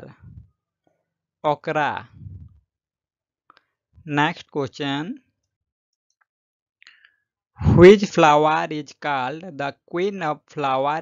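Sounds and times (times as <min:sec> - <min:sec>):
person speaking: 0:00.0 - 0:00.4, 0:01.5 - 0:02.6, 0:07.6 - 0:11.0.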